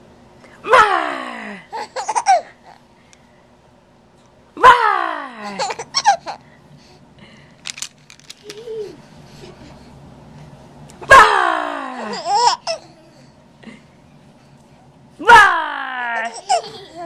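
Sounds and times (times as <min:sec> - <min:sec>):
baby giggling: 0:01.8 - 0:02.8, 0:05.5 - 0:06.4, 0:12.0 - 0:13.0, 0:16.2 - 0:17.0.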